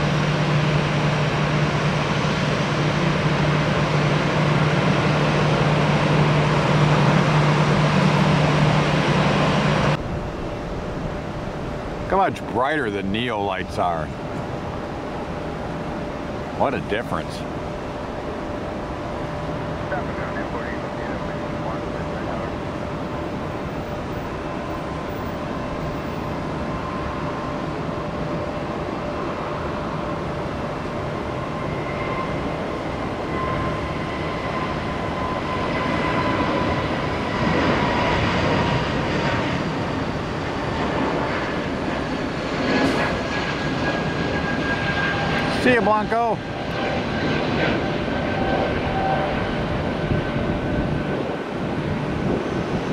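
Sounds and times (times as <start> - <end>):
jet engine roar with whine: 0.0 - 52.9.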